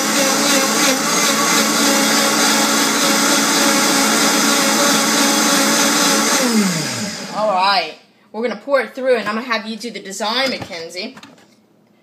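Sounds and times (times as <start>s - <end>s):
blender running: 0.0s - 7.8s.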